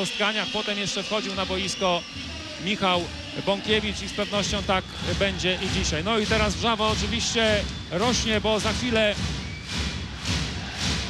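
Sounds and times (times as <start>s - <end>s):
crowd clapping and cheering: 0.0s - 11.0s.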